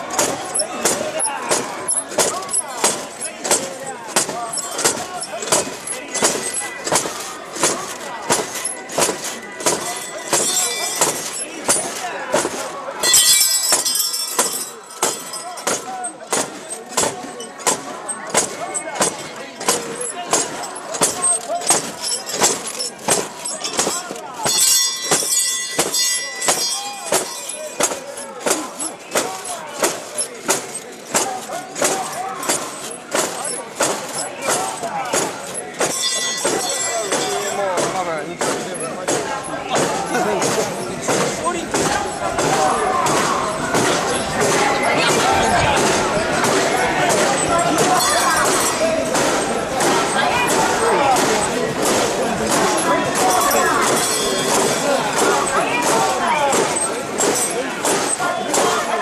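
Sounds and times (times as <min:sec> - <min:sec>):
metal fittings clanking: 0:00.0 - 0:58.9
crowd shouting rhythmic chant: 0:00.0 - 0:59.0.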